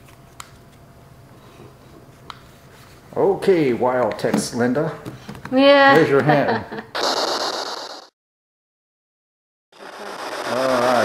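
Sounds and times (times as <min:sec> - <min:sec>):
static hiss: 0:09.8 - 0:11.0.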